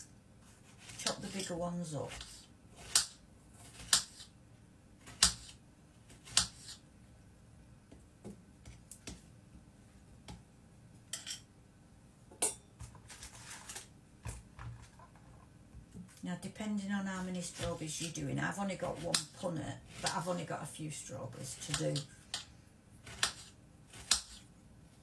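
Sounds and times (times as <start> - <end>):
knife chopping on board: 6.2 - 6.8, 23.0 - 24.4.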